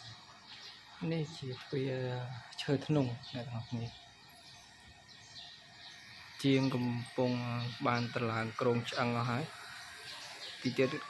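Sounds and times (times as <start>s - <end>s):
faint high bird chirps: 0.0s - 11.0s.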